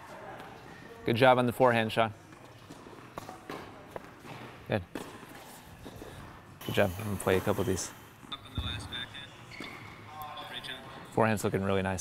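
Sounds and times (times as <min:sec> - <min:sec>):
tennis balls struck with rackets: 0:02.4 - 0:06.1.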